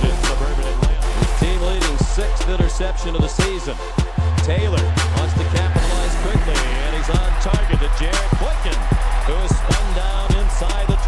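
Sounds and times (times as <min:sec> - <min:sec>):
hip-hop music with heavy bass: 0:00.0 - 0:11.0.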